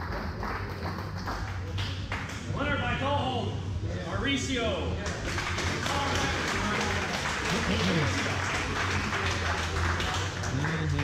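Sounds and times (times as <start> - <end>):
crowd applause: 5.1 - 11.0.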